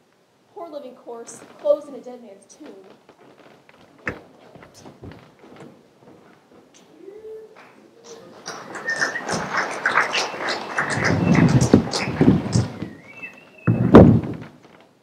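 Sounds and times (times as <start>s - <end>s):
footsteps on stage: 1.1s - 15.0s
knocks and scuffs on stage: 2.6s - 7.0s, 7.6s - 15.0s
loud thump: 13.6s - 14.6s.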